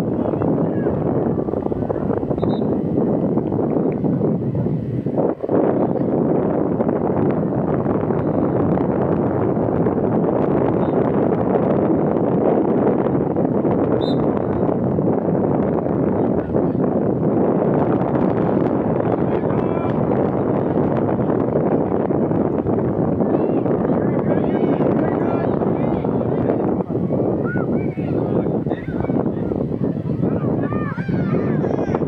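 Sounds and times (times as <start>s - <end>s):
wind buffeting microphone: 0.0s - 32.0s.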